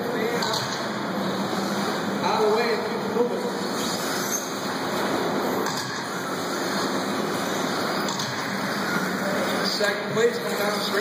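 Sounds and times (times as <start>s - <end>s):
hall background noise: 0.0s - 11.0s
rc cars racing on dirt track: 0.0s - 11.0s.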